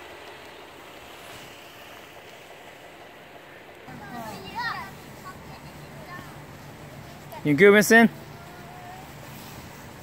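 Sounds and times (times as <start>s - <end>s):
outdoor hiss and low rumble: 0.0s - 10.0s.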